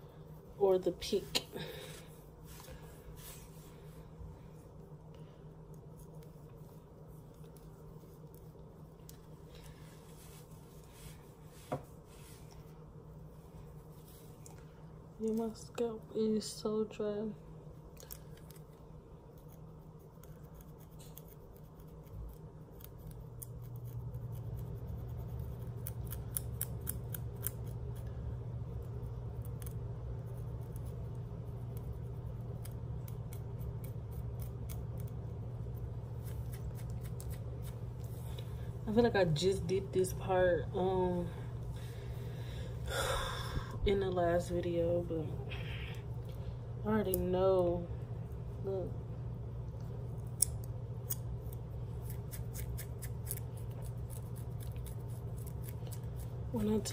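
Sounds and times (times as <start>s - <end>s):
low steady hum: 0.0s - 56.9s
woman speaking: 0.6s - 1.8s, 15.2s - 17.4s, 38.8s - 41.4s, 43.7s - 45.9s, 46.8s - 48.0s, 48.6s - 49.0s, 56.5s - 56.9s
fingernails scratching scalp: 19.3s - 27.8s, 35.8s - 37.8s.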